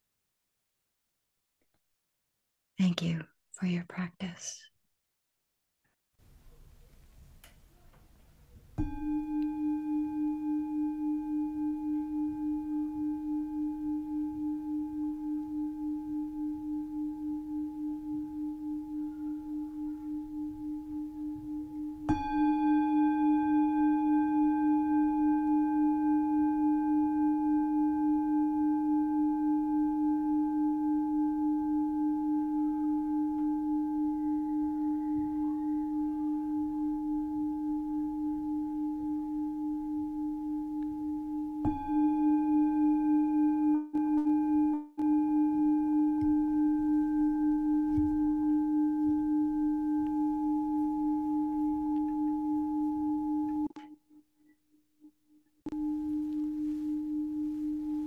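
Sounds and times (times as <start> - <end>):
metal singing bowl ringing: 8.8 - 53.7, 55.7 - 58.0.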